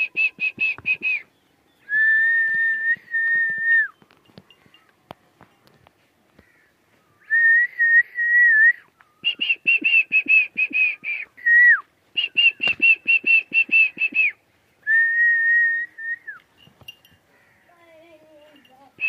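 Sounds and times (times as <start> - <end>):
person whistling: 0.0 - 1.2, 1.9 - 3.9, 7.3 - 16.4.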